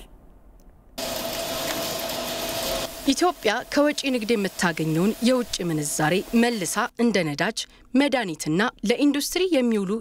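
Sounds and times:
production line machinery: 1.0s - 5.1s.

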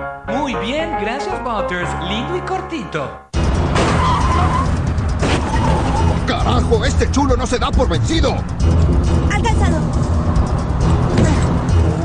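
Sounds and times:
music: 0.0s - 12.0s
car engines running hard: 3.4s - 12.0s
tyre squeal: 3.9s - 6.4s.

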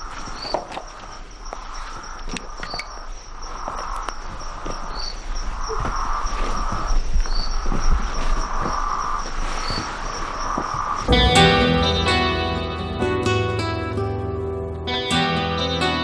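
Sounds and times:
crickets trilling: 0.0s - 11.2s.

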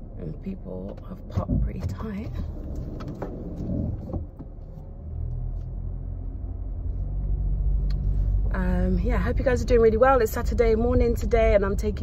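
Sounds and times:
car engine and road rumble: 0.0s - 12.0s.

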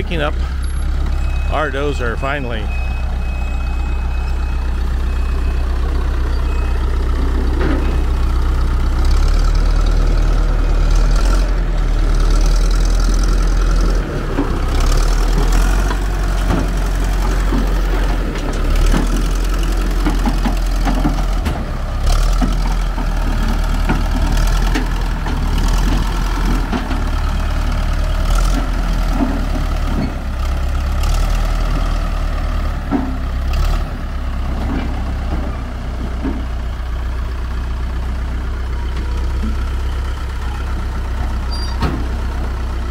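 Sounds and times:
diesel engine under load: 0.0s - 42.9s.

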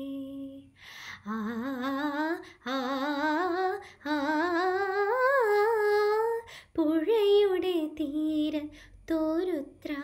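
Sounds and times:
girl singing unaccompanied: 0.0s - 10.0s.

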